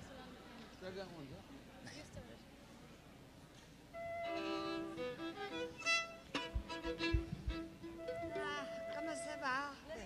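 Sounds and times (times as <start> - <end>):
fiddle playing: 4.0 - 9.6
low thumps: 6.4 - 7.8.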